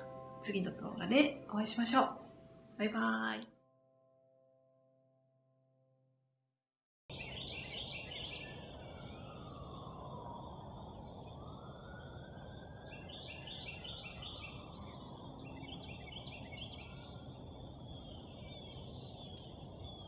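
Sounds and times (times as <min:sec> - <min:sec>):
faint distant siren tone: 0:07.1 - 0:20.0.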